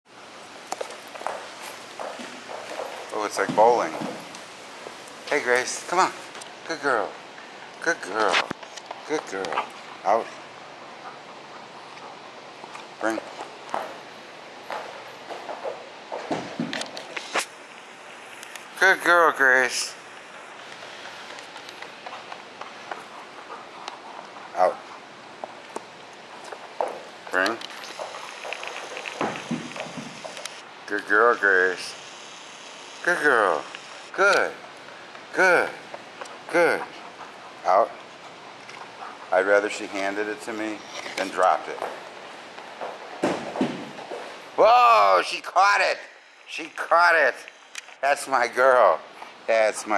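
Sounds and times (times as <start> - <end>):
footsteps on rubber matting: 0.7 - 5.4, 11.8 - 17.5, 20.5 - 30.6, 41.3 - 44.6
dog claws clicking on rubber floor: 14.7 - 17.3, 25.4 - 30.6.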